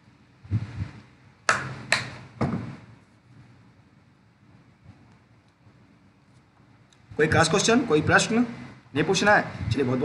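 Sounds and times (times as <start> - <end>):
knocks: 1.5 - 2.8.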